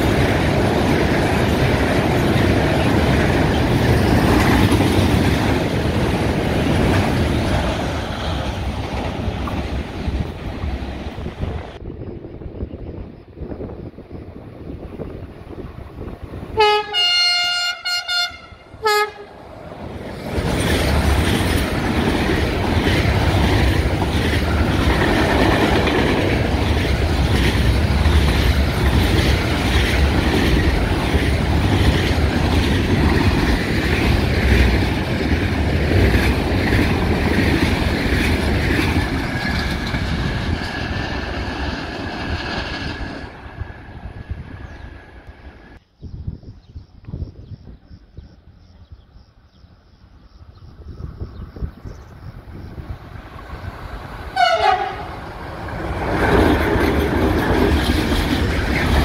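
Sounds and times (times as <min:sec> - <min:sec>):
train wheels rumbling on rails: 0:00.0 - 0:59.0
locomotive horn blasts: 0:16.6 - 0:19.4, 0:54.4 - 0:55.2.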